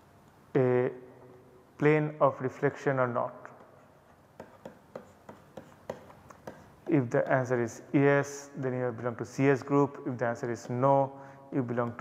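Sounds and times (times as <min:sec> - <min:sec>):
man speaking: 0:00.5 - 0:01.1, 0:01.8 - 0:03.6, 0:06.9 - 0:12.0
stylus tapping on tablet: 0:04.4 - 0:07.5.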